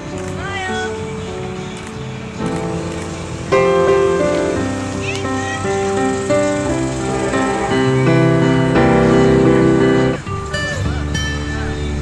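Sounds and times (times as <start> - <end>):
music with long held notes: 0.0 - 12.0
cry-like sound rising and falling: 3.5 - 10.2.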